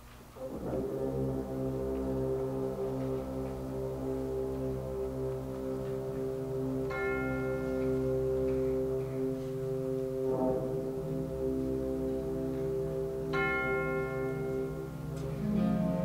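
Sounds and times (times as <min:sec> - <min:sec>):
band holding woodwind chord: 0:00.4 - 0:16.0
tubular bells ringing: 0:00.5 - 0:16.0.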